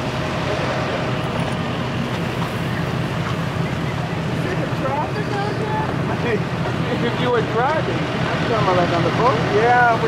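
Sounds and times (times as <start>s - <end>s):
boat engine rumble: 0.0s - 10.0s.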